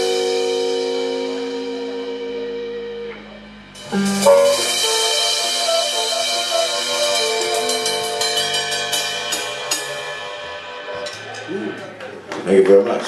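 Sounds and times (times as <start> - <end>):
harmonica note: 0.0 - 12.0
electric guitar: 0.0 - 12.5
cymbal and drum hits: 0.0 - 12.6.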